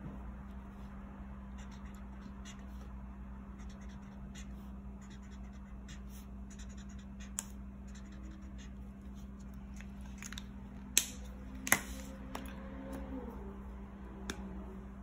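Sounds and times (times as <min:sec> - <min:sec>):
marker scratching on paper: 0:01.5 - 0:09.6.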